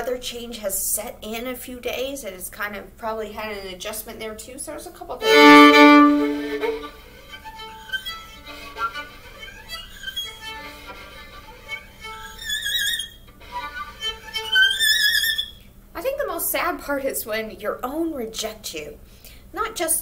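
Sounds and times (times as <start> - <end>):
solo violin bowed: 5.2 - 15.5.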